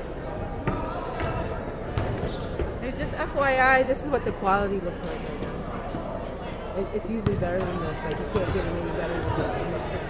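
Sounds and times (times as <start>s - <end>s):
voices echoing in hall: 0.0s - 10.0s
basketball bouncing on gym floor: 0.6s - 2.8s, 7.2s - 9.4s.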